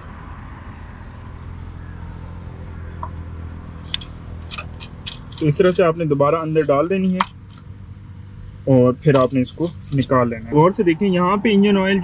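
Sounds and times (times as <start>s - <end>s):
metallic dipstick scrapes and clicks: 3.8s - 5.9s.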